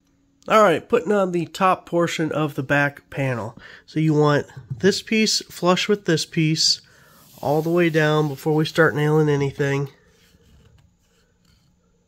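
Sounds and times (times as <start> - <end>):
hand rubbing on hardboard panel: 7.1 - 11.8.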